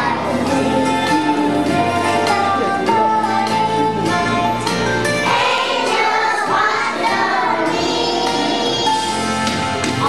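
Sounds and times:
children singing together: 0:00.0 - 0:04.6, 0:05.2 - 0:10.0.

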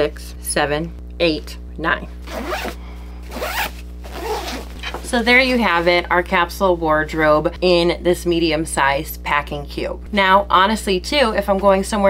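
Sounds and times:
zipper being pulled closed: 0:02.2 - 0:05.1.

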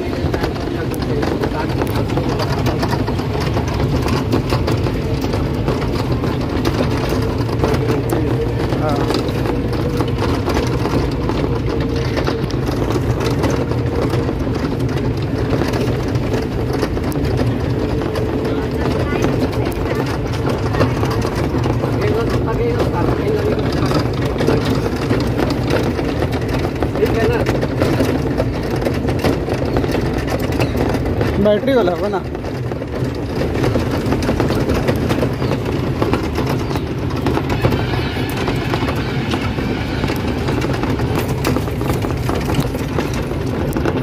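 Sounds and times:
tyres rumbling: 0:00.0 - 0:44.0
wind: 0:00.0 - 0:44.0.

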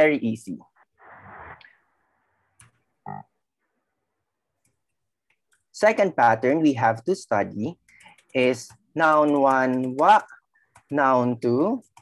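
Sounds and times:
computer keyboard clicks: 0:07.7 - 0:11.1.

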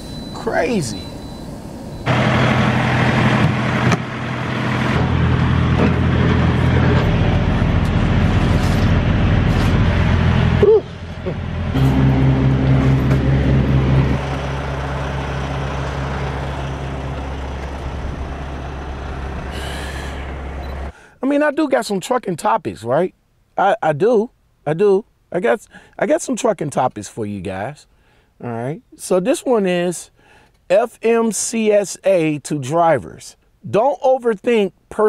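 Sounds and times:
diesel truck engine running: 0:00.0 - 0:21.0.

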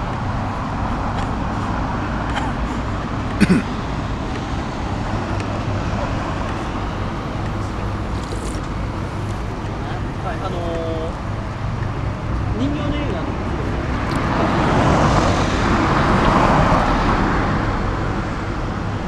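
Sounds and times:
road traffic: 0:00.0 - 0:19.0.

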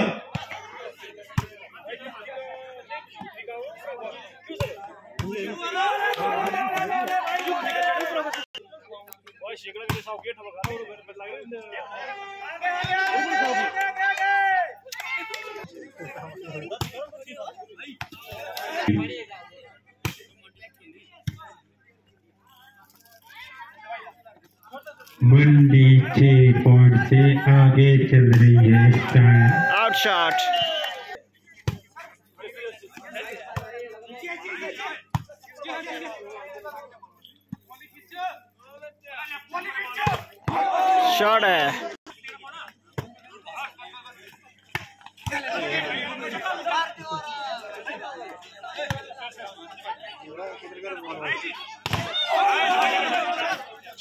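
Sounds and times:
spectators talking and calling out: 0:21.6 - 0:38.6.

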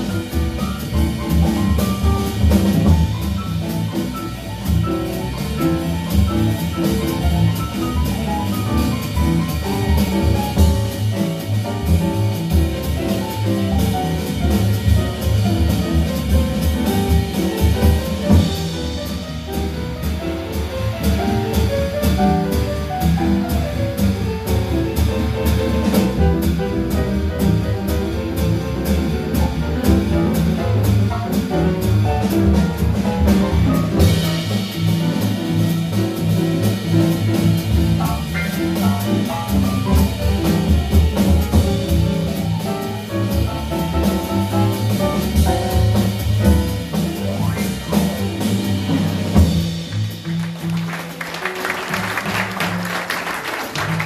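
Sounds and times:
jazz piano trio playing: 0:00.0 - 0:54.0.

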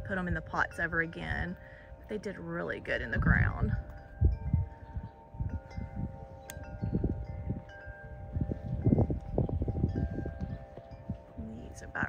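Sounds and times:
wind chimes ringing: 0:00.0 - 0:12.0
wind gusting on microphone: 0:00.0 - 0:12.0.

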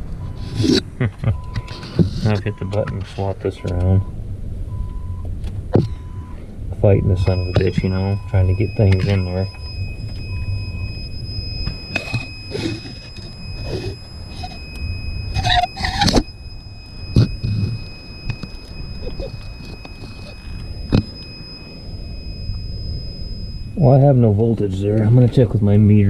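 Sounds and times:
faint high whine: 0:00.0 - 0:26.0
steady low rumble: 0:00.0 - 0:26.0
squeaky scrape: 0:00.2 - 0:00.9, 0:01.5 - 0:03.3, 0:07.2 - 0:21.7
wires rustling and clicking: 0:08.5 - 0:21.9.

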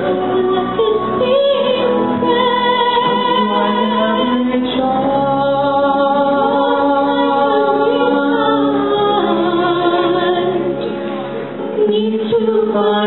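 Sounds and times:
man and woman singing duet: 0:00.0 - 0:10.9, 0:11.6 - 0:13.0
backing music: 0:00.0 - 0:13.0.

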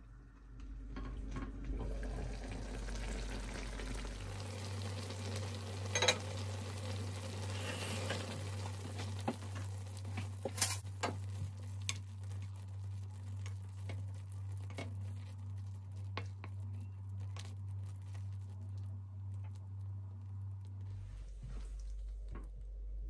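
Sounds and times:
stew sizzling and bubbling in pan: 0:00.4 - 0:22.3.

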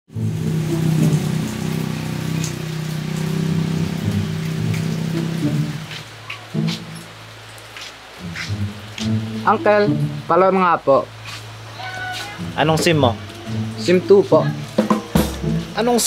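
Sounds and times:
music of held low notes: 0:00.1 - 0:16.0
rain on wet paved road: 0:00.1 - 0:16.0
water drips: 0:00.1 - 0:16.0.

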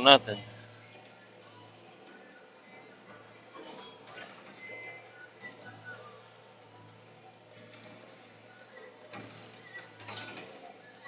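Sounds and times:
machine squeaks and creaks: 0:00.0 - 0:11.0.

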